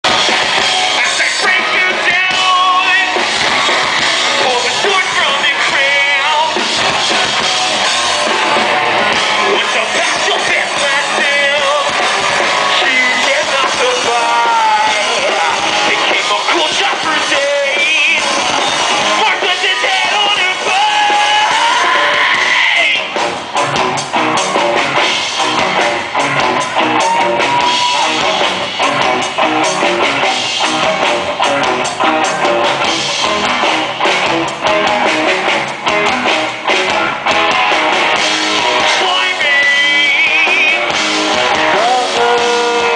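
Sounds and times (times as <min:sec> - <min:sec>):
drum kit: 0:00.0 - 0:42.9
electric guitars: 0:00.0 - 0:42.9
person singing: 0:00.9 - 0:03.3, 0:04.2 - 0:06.7, 0:09.2 - 0:18.4, 0:38.7 - 0:42.9.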